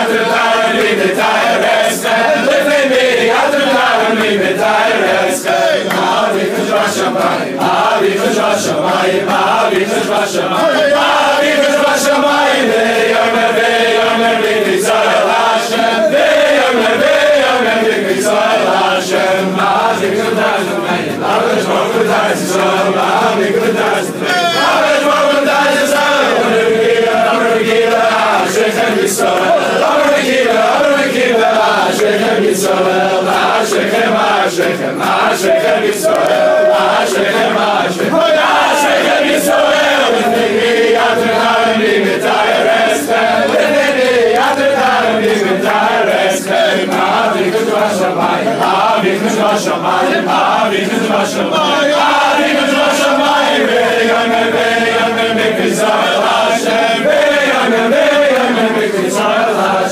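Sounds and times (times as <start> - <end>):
men singing in unison: 0.0 - 59.9.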